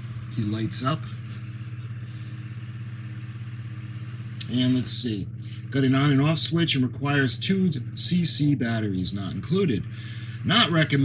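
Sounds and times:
motor humming with fast flutter: 0.0 - 11.0.

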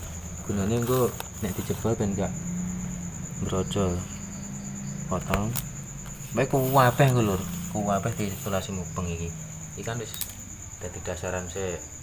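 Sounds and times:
insect trilling: 0.0 - 12.0.

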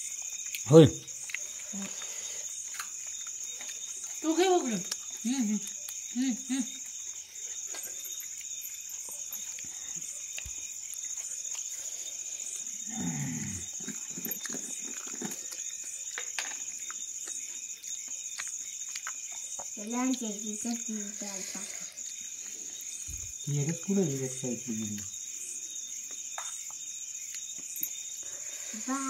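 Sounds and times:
crickets chirring: 0.0 - 29.0.

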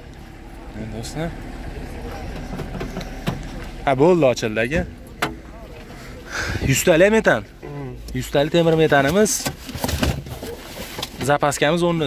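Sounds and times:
chatter of many people: 0.0 - 9.2.

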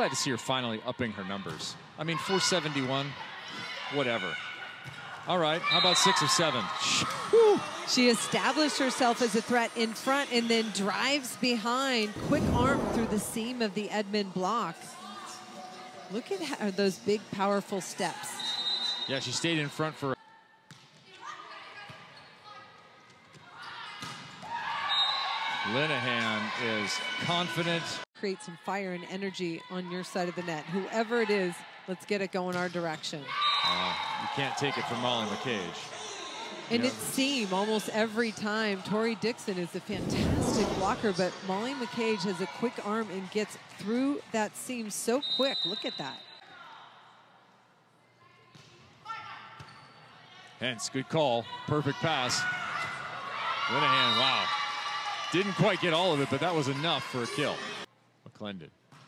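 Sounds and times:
indoor gym ambience: 0.0 - 58.8
crowd noise echoing: 1.8 - 14.6
players shouting: 51.4 - 57.9.

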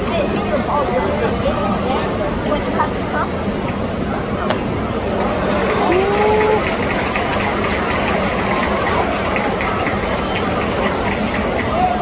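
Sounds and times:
murmur of crowd: 0.0 - 12.0
spectator shouting: 5.8 - 6.7.

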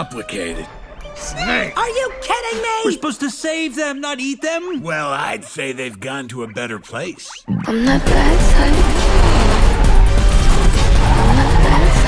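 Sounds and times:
soundtrack music: 7.5 - 12.0
car engine speeding: 8.0 - 12.0.

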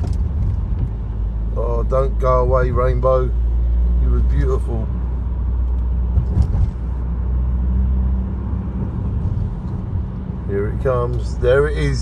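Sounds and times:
car engine and road drone: 0.0 - 12.0.

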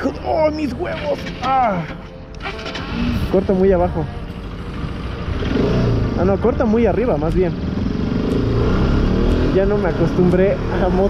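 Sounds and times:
motorcycle engine accelerating: 4.4 - 11.0.

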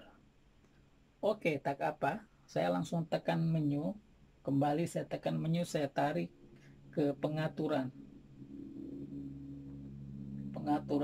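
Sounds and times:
man humming mmm: 7.9 - 11.0.

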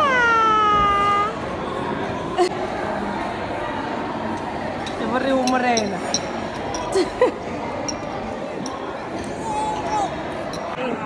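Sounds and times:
dining room chatter: 0.0 - 11.0
toddler squealing: 9.4 - 10.2.

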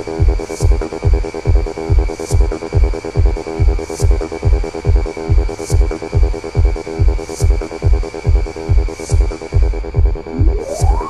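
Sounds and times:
techno dance track: 0.0 - 11.0
four-on-the-floor kick drum: 0.1 - 11.0
fast repeating synth pulse: 9.2 - 11.0
hissing noise swell: 9.2 - 11.0.

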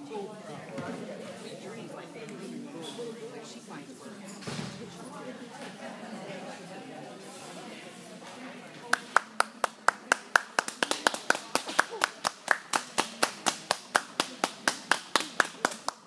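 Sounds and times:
hands clapping: 8.9 - 16.0.

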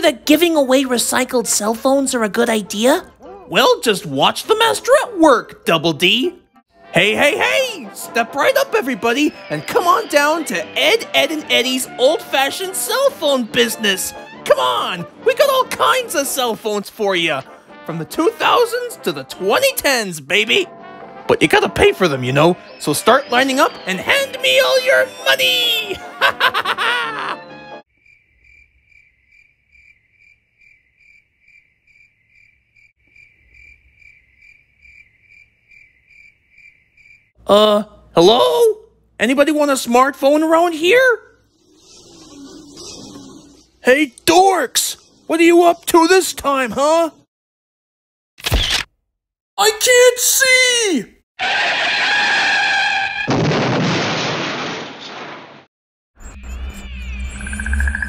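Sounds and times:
crickets chirping: 27.9 - 37.4, 56.2 - 58.0
cartoon crash: 48.4 - 48.9, 51.4 - 58.0
low rumble with whistle tones: 56.2 - 58.0.

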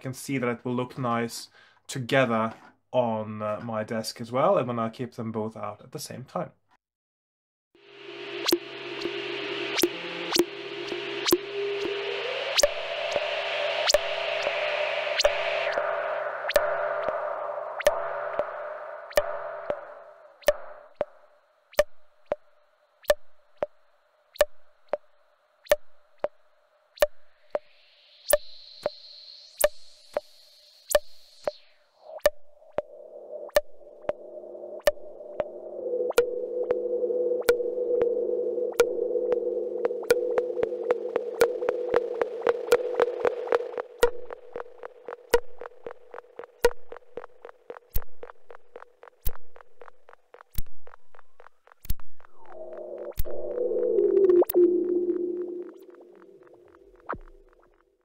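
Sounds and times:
deep synth drone: 7.8 - 21.2, 32.0 - 57.7
noisy synth drone: 7.8 - 21.2, 28.0 - 57.8
high rising synth tone: 7.8 - 21.3, 27.5 - 57.8
synth held tone: 7.8 - 21.3, 27.0 - 57.8
synth sharp clicks: 8.3 - 26.4, 27.0 - 57.9.

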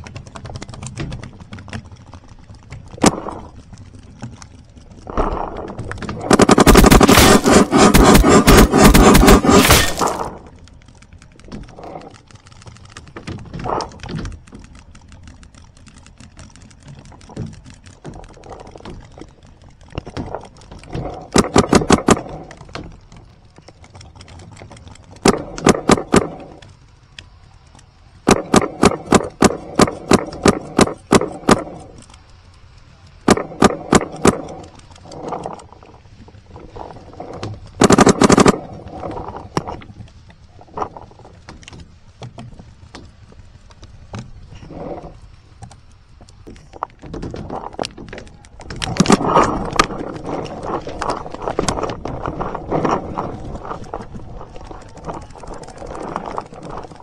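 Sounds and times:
paintball marker rapid firing: 6.2 - 10.3, 21.4 - 22.2, 28.3 - 31.7, 33.3 - 34.6, 37.8 - 38.6.

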